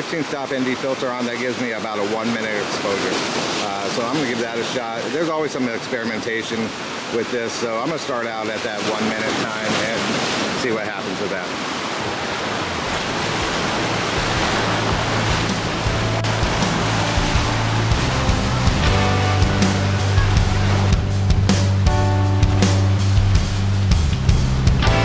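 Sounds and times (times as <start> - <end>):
surf breaking over rocks: 0.0 - 25.0
background music with bass: 13.1 - 25.0.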